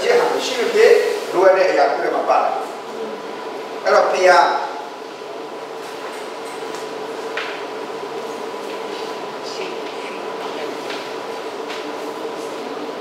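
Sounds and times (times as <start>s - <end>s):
room hum and hiss: 0.0s - 13.0s.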